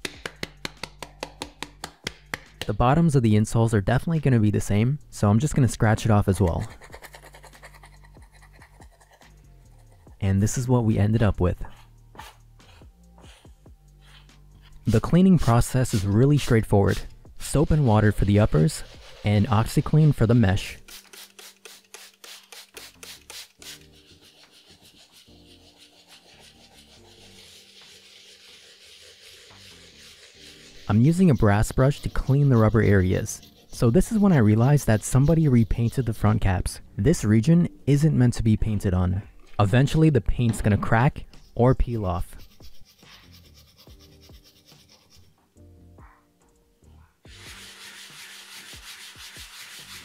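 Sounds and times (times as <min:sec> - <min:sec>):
blade scraping insole: 0:12.2 - 0:36.5, 0:47.3 - 0:50.0
brush scrubbing wet shoe: 0:14.9 - 0:36.5, 0:47.3 - 0:50.0.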